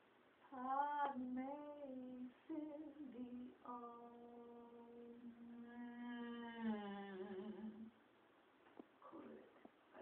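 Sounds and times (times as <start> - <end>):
woman humming: 3.7 - 8.0.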